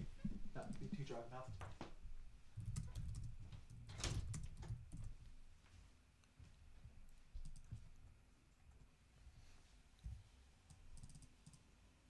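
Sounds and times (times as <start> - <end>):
faint clicks: 7.1 - 7.8.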